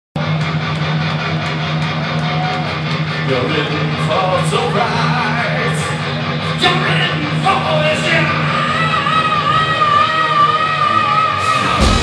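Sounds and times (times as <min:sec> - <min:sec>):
heavy metal band playing: 0:00.2 - 0:12.0.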